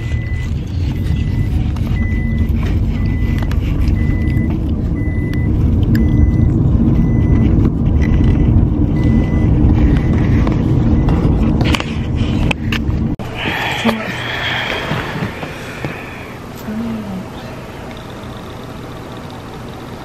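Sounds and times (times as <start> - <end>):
car cabin rumble: 0.0 - 20.0.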